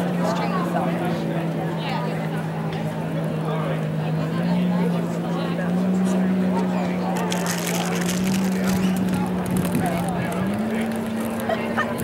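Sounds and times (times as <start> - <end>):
distant racing boat engines droning: 0.0 - 12.0.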